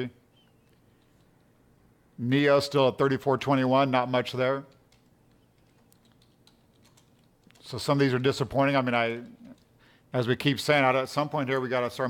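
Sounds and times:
computer keys clicking: 4.7s - 9.7s.

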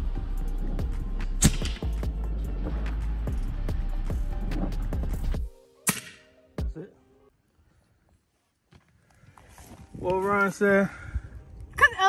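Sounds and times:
background music with beat: 0.0s - 6.8s
air rifle shot crack: 1.4s - 2.0s, 5.8s - 6.4s.

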